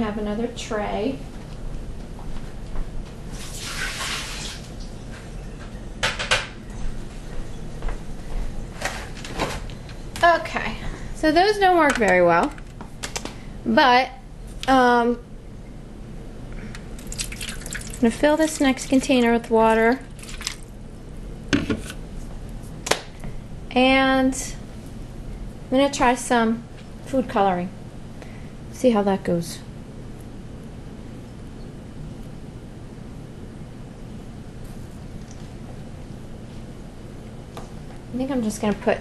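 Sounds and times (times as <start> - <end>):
water splashing from a tray: 3.4 - 4.7, 17.0 - 18.8, 19.9 - 20.6.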